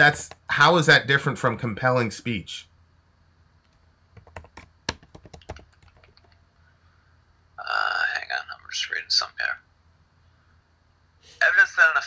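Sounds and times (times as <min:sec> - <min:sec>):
keyboard key clicks: 0:04.2 - 0:06.3.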